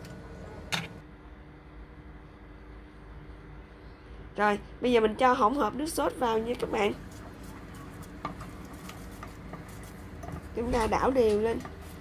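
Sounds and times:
spatula stirring thick sauce: 0:07.0 - 0:10.6.

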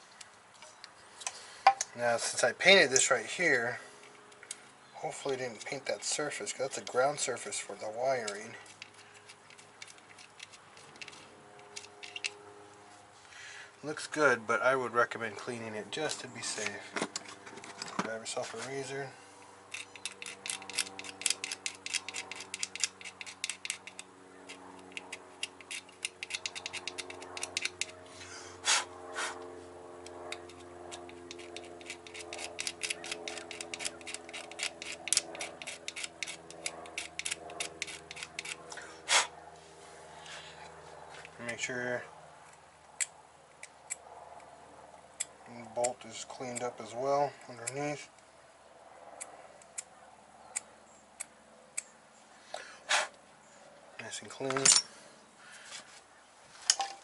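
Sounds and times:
razor blade scraping paint off metal: 0:19.7 - 0:29.4, 0:30.4 - 0:39.4.

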